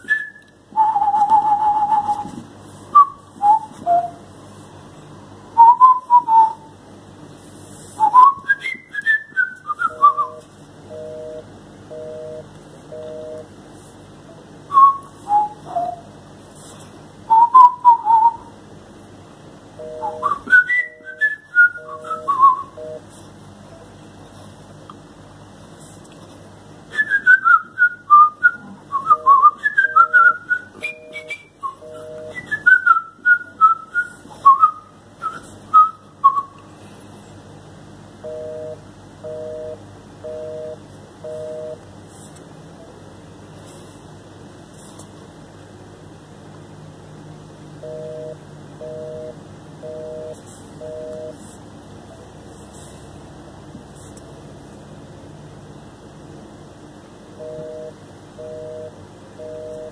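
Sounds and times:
whistled chirps and trills: 0:00.0 - 0:02.3, 0:08.0 - 0:10.4, 0:14.7 - 0:16.1, 0:17.3 - 0:18.5, 0:20.0 - 0:22.8, 0:26.9 - 0:36.6
telephone busy signal: 0:09.9 - 0:13.5, 0:19.8 - 0:23.1, 0:29.1 - 0:32.5, 0:38.2 - 0:41.8, 0:47.8 - 0:51.4, 0:57.4 - 0:59.9.

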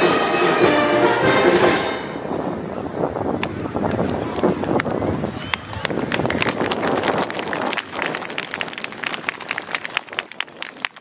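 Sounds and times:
crowd voices: 0:00.0 - 0:11.0
audience applause: 0:03.9 - 0:11.0.

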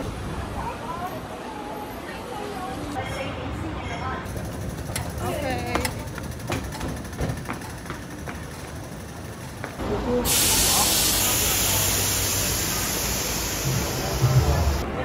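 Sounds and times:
loud steady hiss: 0:09.8 - 0:14.8.

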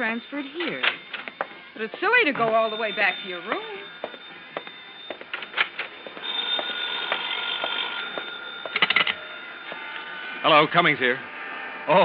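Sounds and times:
telephone bell ringing: 0:00.0 - 0:11.0.

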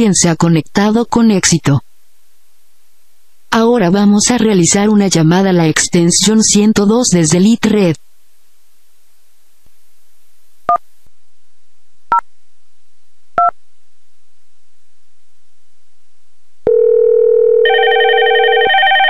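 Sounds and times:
multi-tone phone ring: 0:16.7 - 0:19.0.

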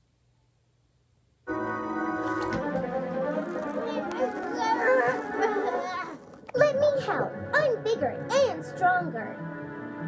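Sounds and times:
background music: 0:01.5 - 0:10.0
cartoon voices calling out: 0:03.8 - 0:08.4.

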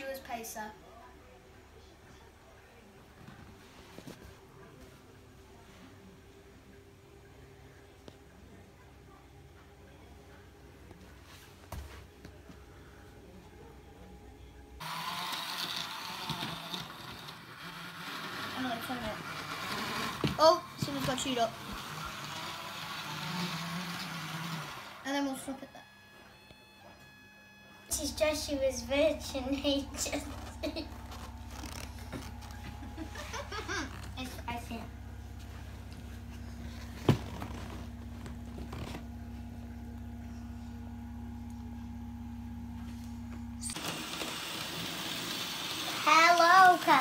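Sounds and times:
model train motor running: 0:14.8 - 0:25.8, 0:43.7 - 0:47.0
wheels rolling on track: 0:14.9 - 0:25.0.

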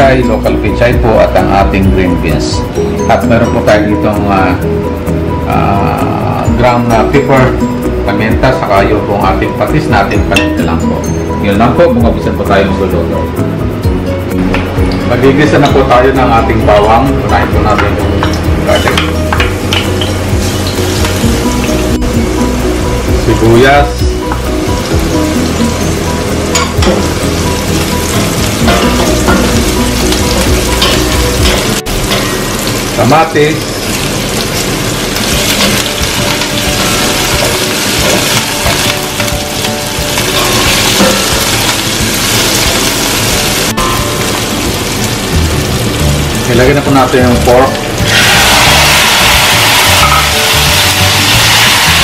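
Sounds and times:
background music: 0:00.0 - 0:52.0
garlic sizzling in hot oil: 0:17.4 - 0:52.0.

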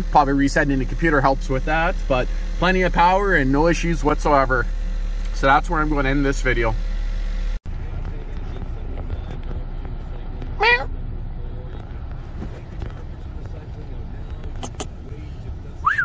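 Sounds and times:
vehicle engine idling: 0:00.0 - 0:16.0
sharp clicks: 0:14.4 - 0:15.1.

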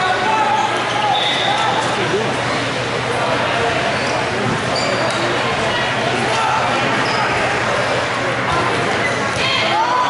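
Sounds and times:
sneakers squeaking: 0:00.5 - 0:01.9, 0:03.8 - 0:05.4, 0:06.8 - 0:07.6.

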